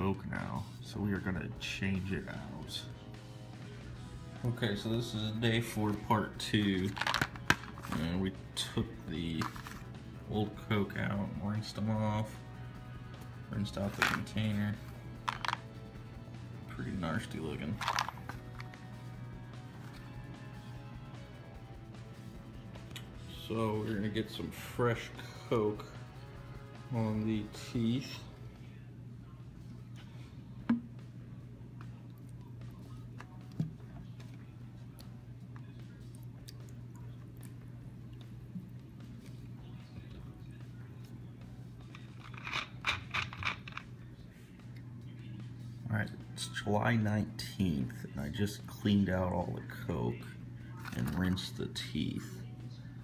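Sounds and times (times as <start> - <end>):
background music with sustained tones: 0.0 - 53.0
steady low hum: 0.0 - 53.0.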